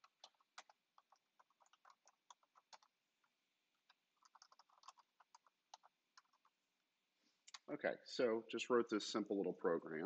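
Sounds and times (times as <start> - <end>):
computer keyboard typing: 0.0 - 6.6
man speaking: 7.6 - 10.0.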